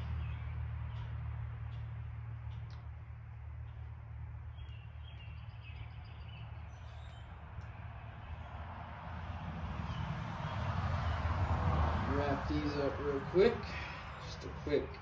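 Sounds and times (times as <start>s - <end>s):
low background rumble: 0.0s - 15.0s
bird chirps: 3.6s - 8.5s.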